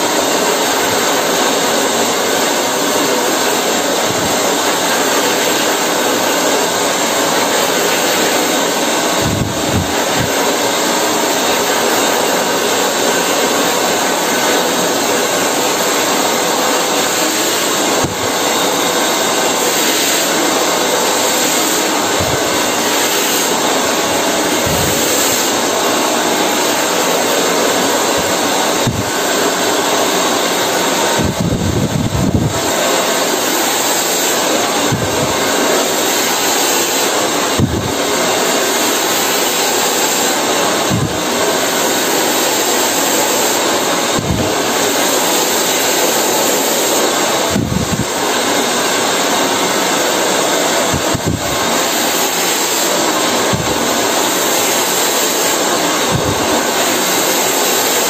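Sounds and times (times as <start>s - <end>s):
hair dryer running: 0.0s - 58.0s.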